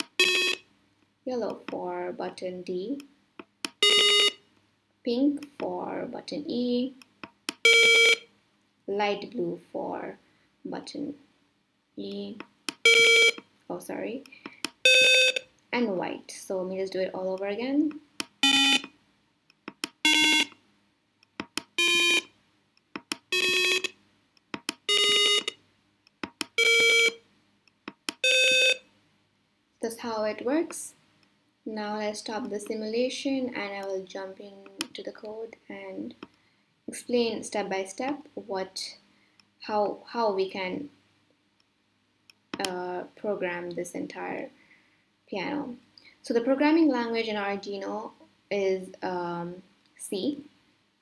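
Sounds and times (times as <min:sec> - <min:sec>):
electronic buzzer beep: 0:00.0 - 0:00.6, 0:03.7 - 0:04.4, 0:07.5 - 0:08.2, 0:12.7 - 0:13.4, 0:14.8 - 0:15.4, 0:18.4 - 0:18.9, 0:20.0 - 0:20.6, 0:21.6 - 0:22.3, 0:23.2 - 0:23.9, 0:24.7 - 0:25.6, 0:26.4 - 0:27.2, 0:28.1 - 0:28.8.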